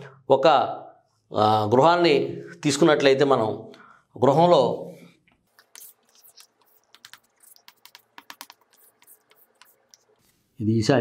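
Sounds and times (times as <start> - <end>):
chalk tapping and scraping on chalkboard: 5.3 - 10.5.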